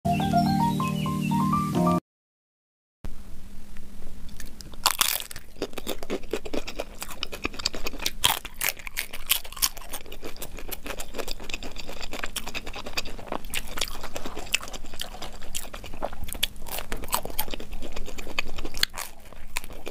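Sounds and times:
crunching and chewing food: 0:04.2 - 0:19.9.

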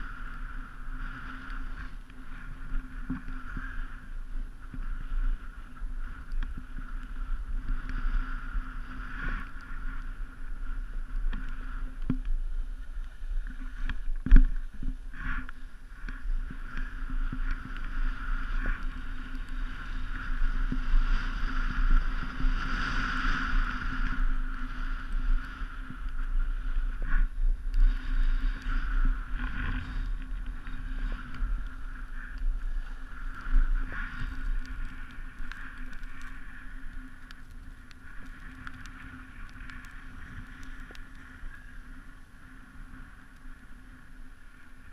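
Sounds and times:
skis scraping over snow: 0:00.0 - 0:44.9
wind rushing over microphone: 0:00.0 - 0:44.9.

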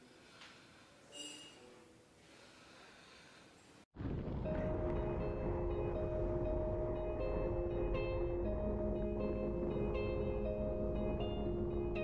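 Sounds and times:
low rumble: 0:04.0 - 0:12.0
slow background music chords: 0:04.1 - 0:12.0.

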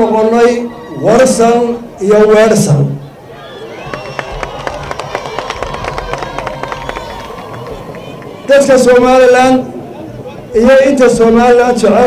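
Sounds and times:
crowd applauding: 0:03.3 - 0:09.4.

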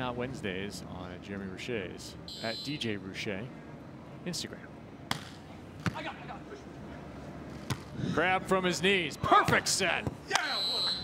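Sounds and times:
faint stadium background: 0:00.0 - 0:11.0.

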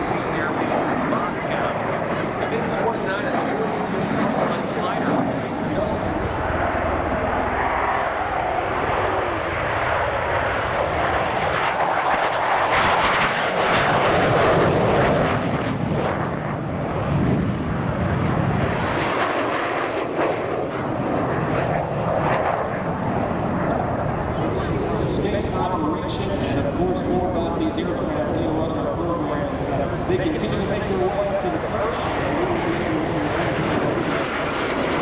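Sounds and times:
jet aircraft flying past: 0:00.0 - 0:35.0.

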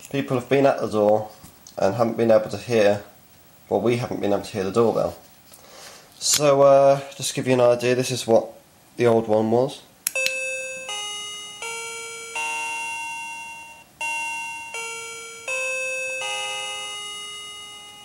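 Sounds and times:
doorbell chime melody: 0:10.2 - 0:18.0.

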